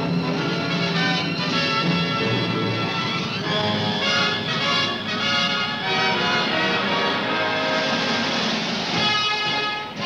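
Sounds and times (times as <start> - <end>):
jet engines roaring: 0.0 - 10.0
orchestral film score: 0.0 - 10.0.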